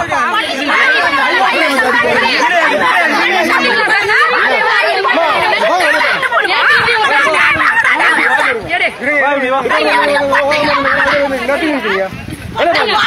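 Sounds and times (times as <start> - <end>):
people shouting and arguing: 0.0 - 13.0.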